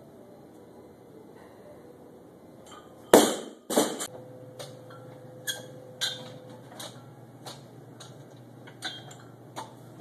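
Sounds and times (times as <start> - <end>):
barbell dropped on wooden platform: 3.1 - 4.1.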